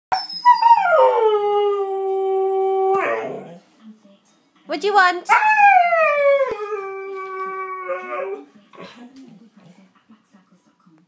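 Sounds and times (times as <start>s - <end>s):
dog howling: 0.4s - 3.6s, 5.3s - 8.5s.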